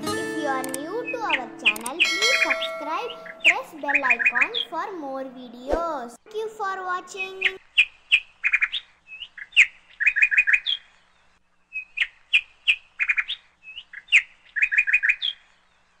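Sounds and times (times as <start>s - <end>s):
bird chirping: 0.6s - 5.4s, 7.0s - 16.0s.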